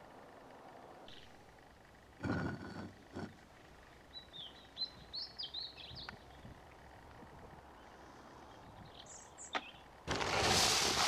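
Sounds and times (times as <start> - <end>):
songbird chirping: 3.9 - 7.0, 7.6 - 10.0
handling noises on smoker: 10.1 - 11.0.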